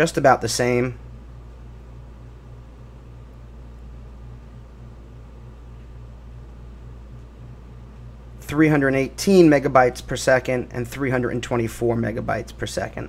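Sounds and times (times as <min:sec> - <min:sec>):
low hum with faint hiss: 0:00.0 - 0:13.0.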